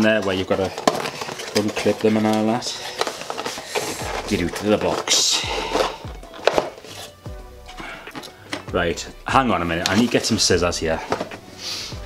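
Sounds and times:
cardboard box handling: 0.6s - 7.2s, 9.7s - 11.4s.

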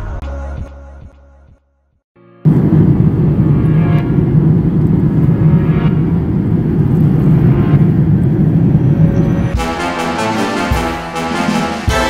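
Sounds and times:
jet engine and airflow rumble: 2.4s - 11.3s
background music with a beat: 9.5s - 12.0s.

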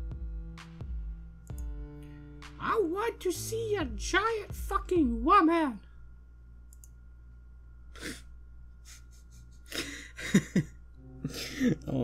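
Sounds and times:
low electrical hum: 0.0s - 12.0s
laughter: 8.8s - 11.8s.

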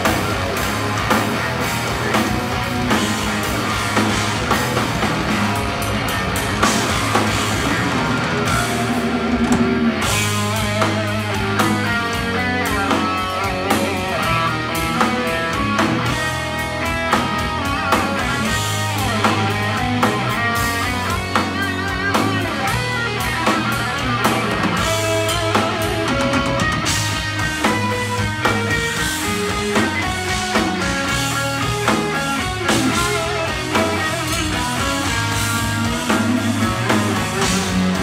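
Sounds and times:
bass guitar: 0.0s - 38.0s
drum kit: 0.0s - 38.0s
electric guitars: 0.0s - 38.0s.

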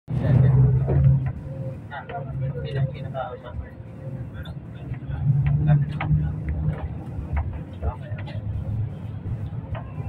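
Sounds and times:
people talking: 0.1s - 10.0s
vehicle engine and road noise: 0.1s - 10.0s.

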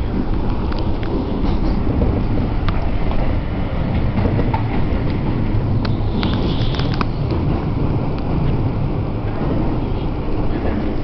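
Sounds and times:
train rumbling: 0.0s - 11.0s.

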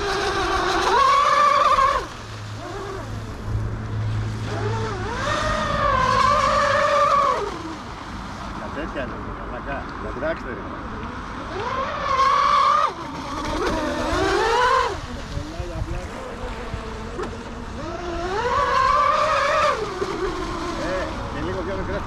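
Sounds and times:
model boat motor whining: 0.0s - 9.1s, 10.1s - 22.0s.

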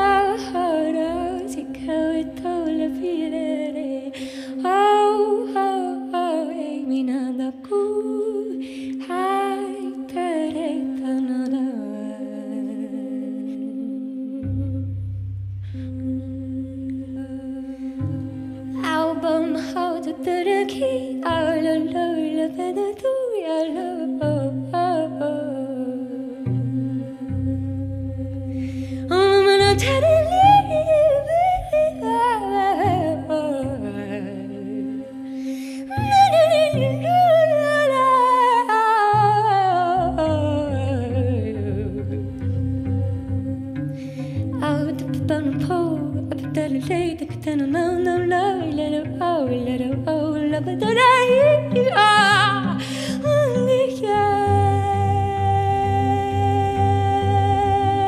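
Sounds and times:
low sustained note: 0.0s - 7.4s, 8.0s - 22.8s, 23.4s - 58.0s
cello: 0.0s - 58.0s
wordless humming with vibrato: 0.0s - 58.0s.

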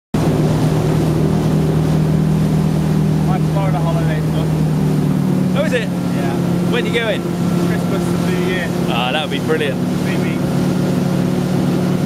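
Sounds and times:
boat engine running: 0.1s - 12.0s
boat wake washing: 0.2s - 12.0s
wind on microphone: 0.2s - 12.0s.

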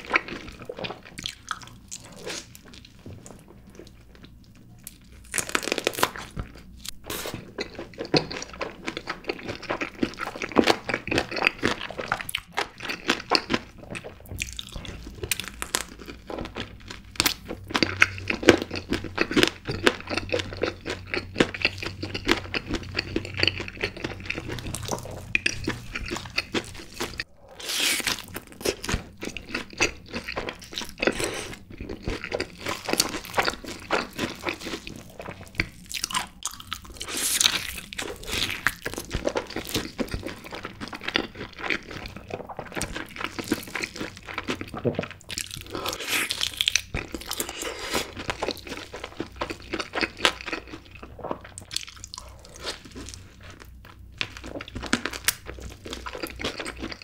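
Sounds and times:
chewing crispy fried chicken: 0.0s - 57.0s.

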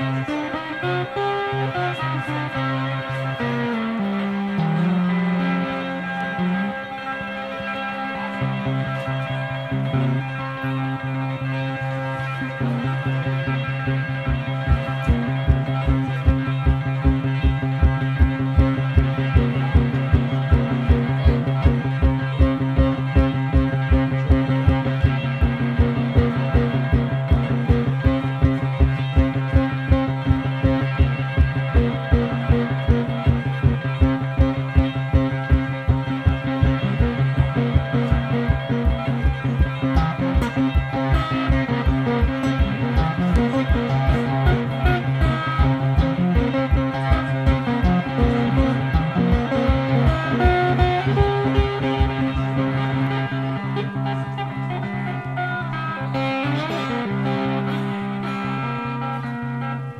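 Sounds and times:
cigar box guitar playing blues: 0.0s - 59.9s
steady driving pulse: 11.9s - 55.2s.

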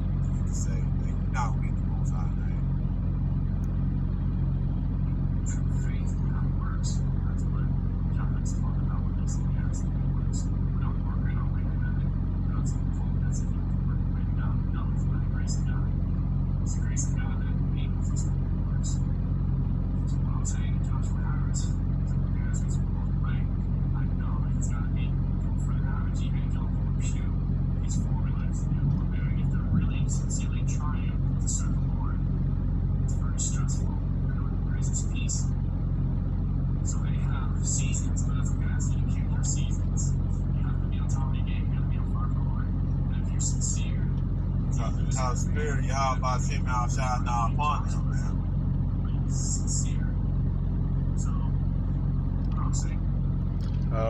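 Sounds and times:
steady low hum: 0.0s - 54.0s
faint speech fragments: 0.1s - 2.7s, 5.3s - 16.0s, 20.0s - 32.2s, 33.0s - 35.6s, 36.8s - 48.4s.

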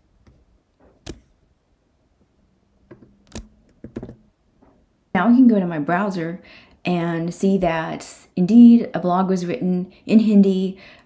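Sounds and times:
keyboard key clicks: 2.9s - 4.2s.

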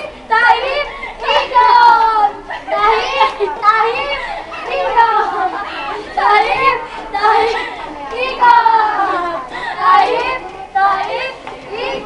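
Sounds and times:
girls chanting and shouting: 0.0s - 12.0s
girls laughing: 0.5s - 8.0s.

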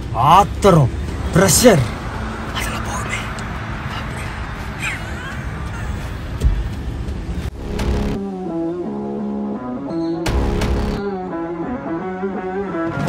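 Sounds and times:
car and street noise: 0.0s - 13.0s
indistinct voices: 0.2s - 6.4s
music with held notes: 8.0s - 13.0s.

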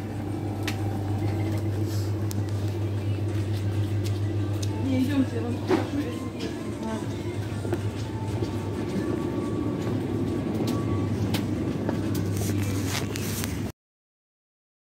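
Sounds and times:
background music: 0.0s - 13.7s
low hum: 0.0s - 13.7s.

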